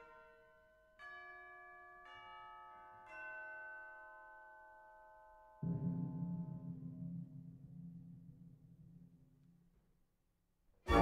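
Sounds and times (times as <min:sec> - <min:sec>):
faint bell chimes: 0:00.0 - 0:06.6.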